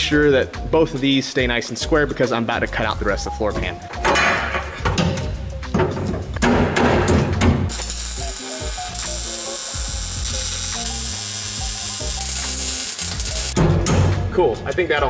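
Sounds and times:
steel tubing clanking: 3.6s - 8.0s
welding arc hissing and crackling: 7.7s - 13.6s.

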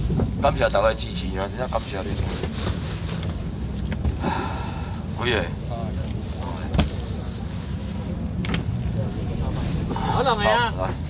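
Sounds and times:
low engine hum: 0.0s - 11.0s
faint crowd voices: 0.4s - 11.0s.

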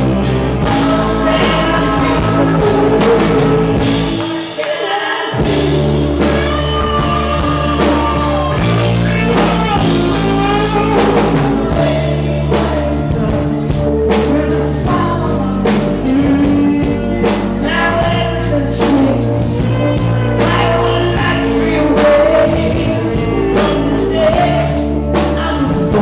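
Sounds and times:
lead vocal singing: 0.0s - 26.0s
rock band playing live: 0.0s - 26.0s.

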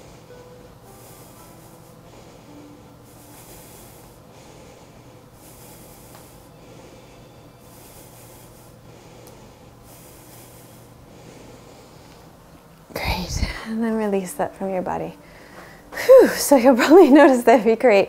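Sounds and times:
woman breathing through nose: 0.0s - 12.4s, 15.2s - 15.9s
faint steady hum: 0.0s - 18.0s.

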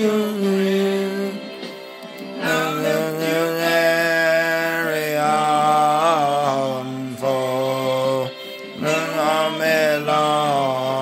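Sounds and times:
backing track: 0.0s - 11.0s
man singing held notes: 2.4s - 11.0s.

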